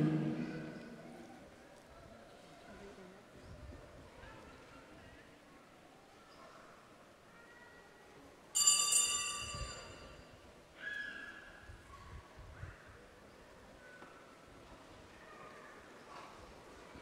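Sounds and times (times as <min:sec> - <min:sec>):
bright metallic ring: 0:08.6 - 0:10.4.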